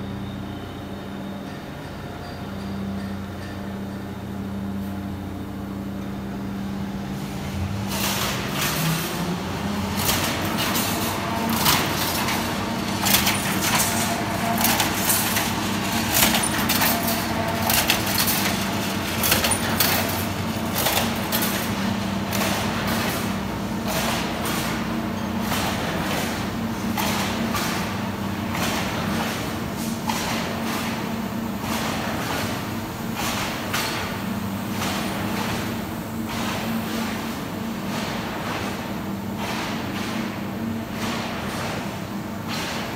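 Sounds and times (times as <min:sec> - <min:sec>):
machine hum: 0:04.1 - 0:29.8.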